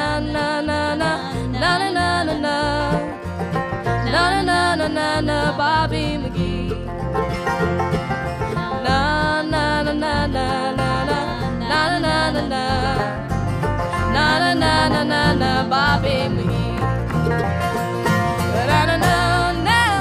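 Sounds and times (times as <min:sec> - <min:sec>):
bluegrass band playing: 0:00.0 - 0:20.0.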